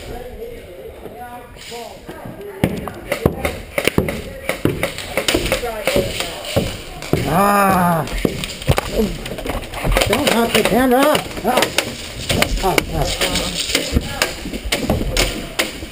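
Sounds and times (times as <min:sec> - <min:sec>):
footsteps on wooden stairs: 0:02.0 - 0:15.9
man shouting: 0:07.2 - 0:08.1.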